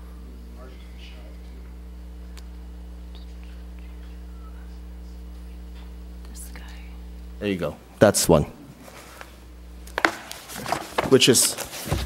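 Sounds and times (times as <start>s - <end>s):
steady low hum: 0.0s - 12.0s
faint whispering voices: 0.2s - 7.1s.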